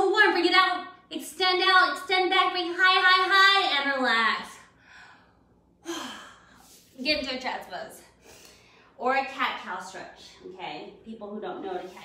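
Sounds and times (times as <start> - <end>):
woman breathy sigh: 5.8 - 6.7.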